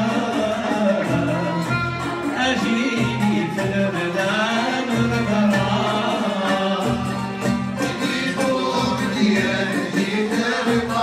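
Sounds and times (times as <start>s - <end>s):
violin: 0.0s - 11.0s.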